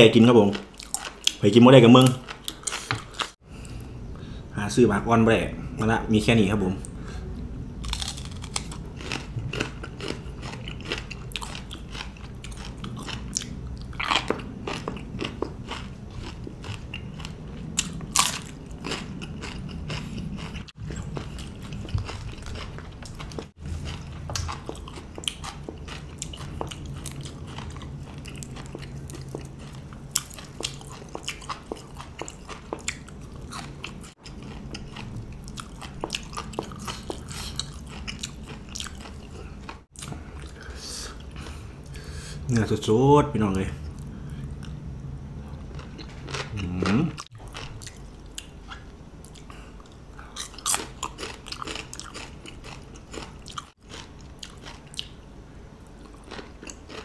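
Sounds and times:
chewing crunchy vegetables: 0:00.1 - 0:03.4, 0:07.8 - 0:42.1, 0:45.4 - 0:55.2, 0:55.8 - 0:57.0.

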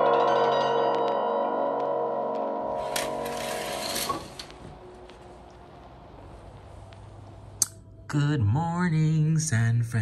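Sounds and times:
curtain sliding on rail: 0:02.8 - 0:04.8.

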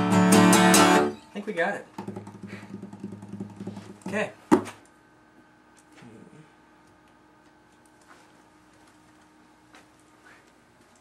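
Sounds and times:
fingers clicking on guitar: 0:02.0 - 0:04.1.

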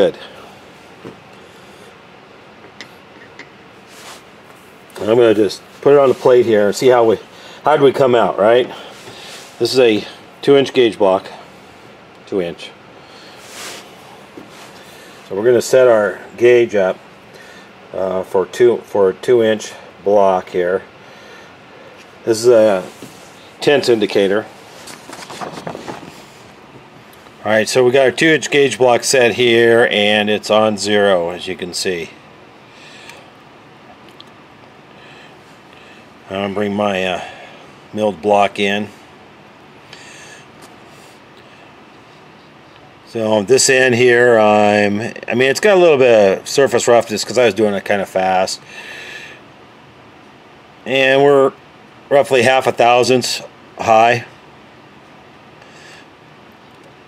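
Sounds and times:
low room hiss: 0:00.0 - 0:57.0
handling clicks and rustling: 0:24.8 - 0:27.4.

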